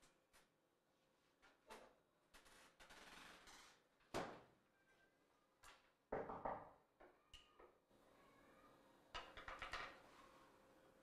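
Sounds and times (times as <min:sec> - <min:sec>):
knocks and clatter on kitchen counter: 0:06.1 - 0:07.8, 0:09.1 - 0:10.1.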